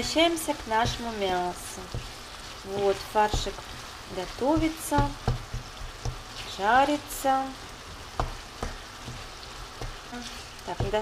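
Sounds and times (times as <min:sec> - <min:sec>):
meat sizzling in a pan: 0:00.0 - 0:11.0
wooden spatula knocking on pan: 0:00.6 - 0:06.4, 0:07.9 - 0:10.1, 0:10.7 - 0:11.0.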